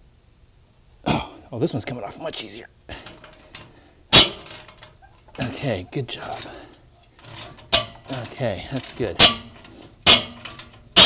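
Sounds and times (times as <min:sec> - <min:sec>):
faint handling noise: 0:02.3 - 0:11.0
socket wrench metallic clack: 0:07.2 - 0:11.0.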